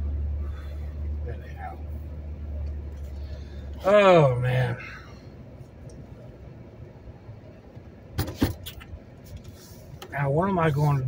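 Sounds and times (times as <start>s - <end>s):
car driving rumble: 0.0s - 11.0s.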